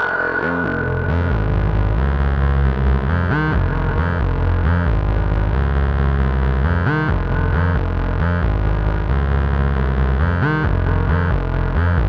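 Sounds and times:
synthesizer low notes with echo: 0.0 - 12.0.

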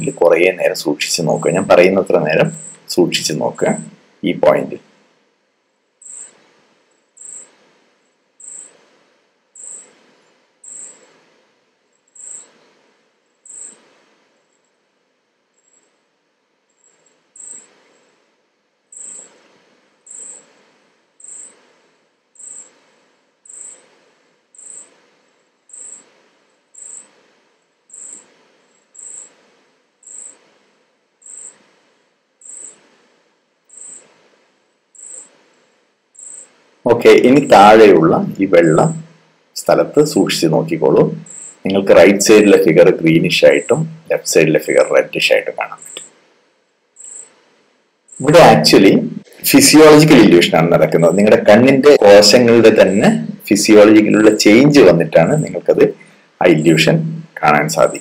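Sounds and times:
insect chirping: 0.0 - 5.1, 5.8 - 58.0.

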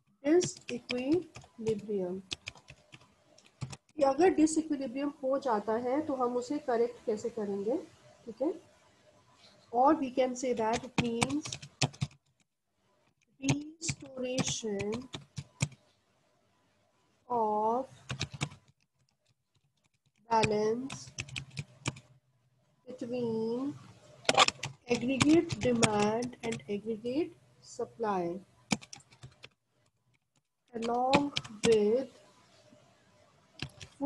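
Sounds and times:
computer keyboard typing: 0.2 - 4.2, 10.2 - 12.5, 13.4 - 15.8, 18.0 - 22.1, 24.3 - 26.8, 28.7 - 30.2, 30.8 - 32.0, 33.6 - 34.0.

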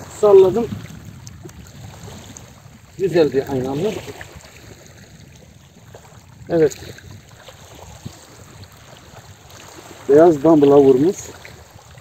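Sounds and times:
small waves lapping on pebbles: 0.0 - 12.0.

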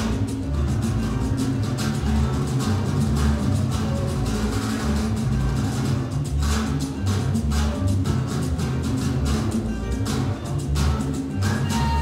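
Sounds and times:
salsa music: 0.0 - 12.0.

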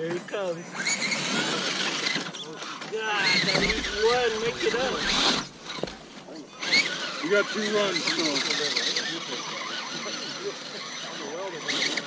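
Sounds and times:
rc truck drivetrain whirring: 0.0 - 12.0.

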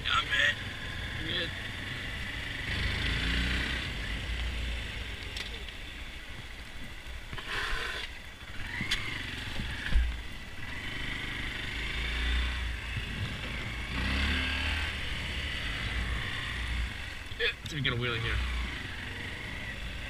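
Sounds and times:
motorcycle engine revving: 0.0 - 6.5, 7.3 - 20.0.

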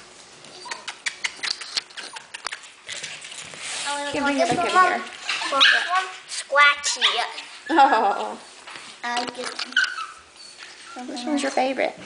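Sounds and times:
puppy claws clicking on wooden floor: 0.7 - 3.6.

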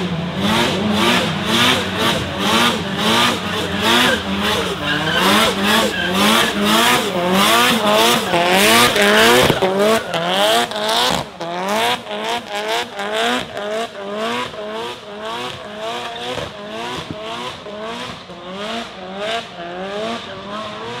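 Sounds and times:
car engine revving: 0.0 - 21.0
tyres squealing: 1.8 - 10.4.

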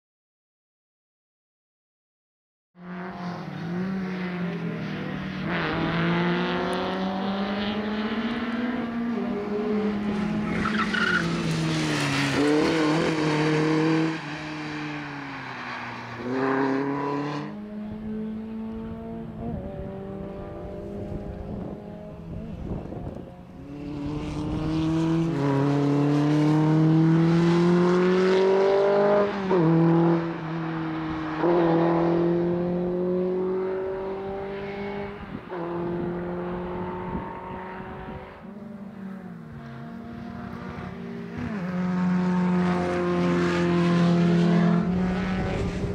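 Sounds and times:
race car engine revving: 2.8 - 15.4, 16.1 - 45.9.

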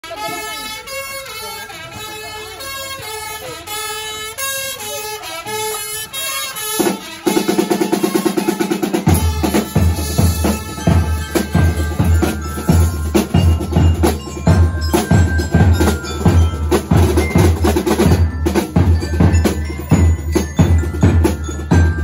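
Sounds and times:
pitched melody: 0.0 - 22.0
marching snare drums: 6.6 - 22.0
bass drum beats: 8.9 - 22.0.

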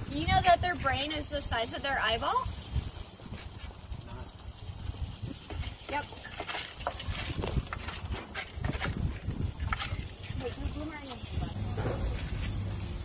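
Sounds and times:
people talking in background: 9.8 - 12.6.

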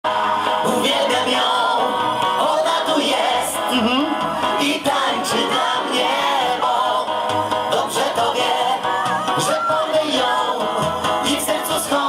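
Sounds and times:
upbeat dance music through pa: 0.1 - 12.0
man singing: 3.5 - 5.6, 7.7 - 12.0.

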